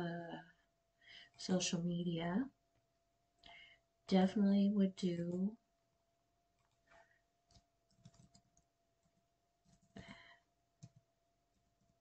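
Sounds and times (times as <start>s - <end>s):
faint steady hum: 0.0s - 12.0s
keystrokes on computer keyboard: 7.4s - 12.0s.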